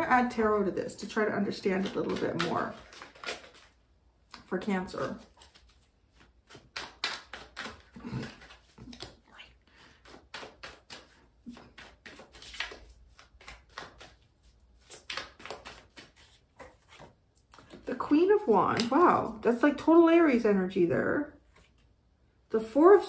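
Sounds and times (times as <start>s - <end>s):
cards being shuffled: 1.4s - 19.4s.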